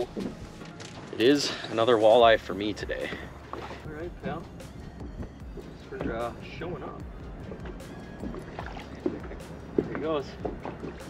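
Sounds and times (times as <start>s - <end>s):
music: 0.0s - 11.0s
water sloshing and gurgling: 0.0s - 11.0s.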